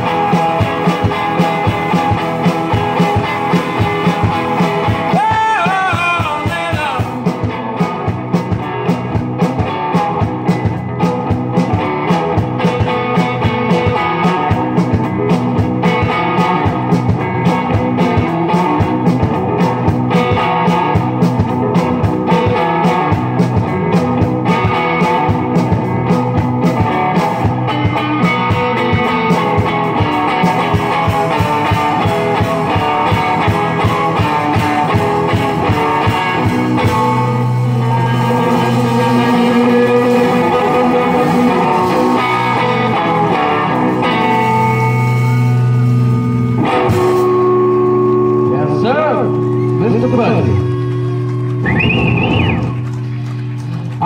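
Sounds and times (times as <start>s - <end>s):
blues guitar: 0.0s - 54.0s
drum kit: 0.0s - 54.0s.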